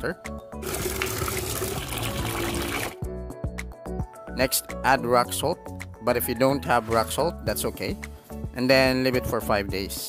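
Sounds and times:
light background music: 0:00.0 - 0:10.0
water pouring into plastic bottle: 0:00.6 - 0:03.0.

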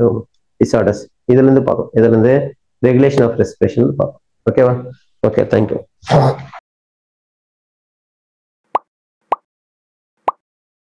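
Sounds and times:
cartoon pop effects: 0:08.7 - 0:09.5, 0:10.2 - 0:10.4.

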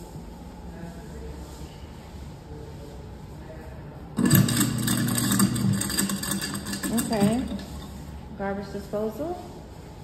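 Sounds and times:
harsh rattling: 0:04.2 - 0:08.2
garbage disposal motor hum: 0:04.2 - 0:08.4.

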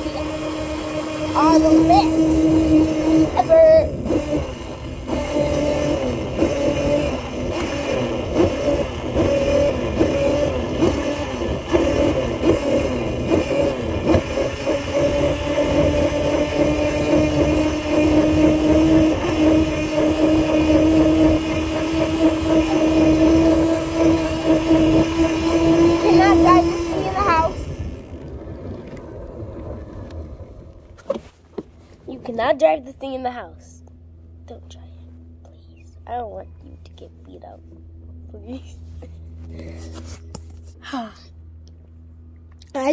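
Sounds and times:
electric motor whining: 0:00.0 - 0:31.0
wheels rumbling: 0:00.0 - 0:42.9.

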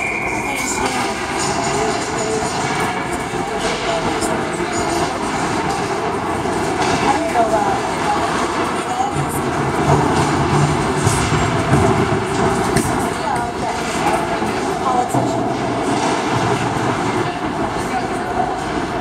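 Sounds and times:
spectators chatter: 0:00.0 - 0:19.0.

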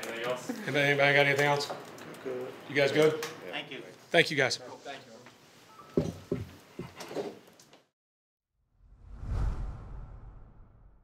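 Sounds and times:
whoosh with deep rumble: 0:08.8 - 0:11.0.

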